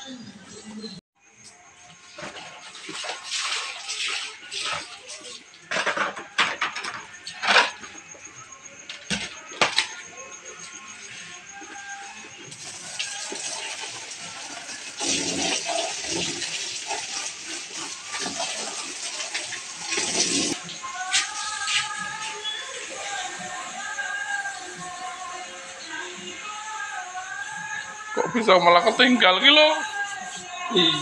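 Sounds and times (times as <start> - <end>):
background song: 0.0 - 31.0
tap water splashing into basin: 2.2 - 5.0
plastic dishes clattering: 5.6 - 8.0.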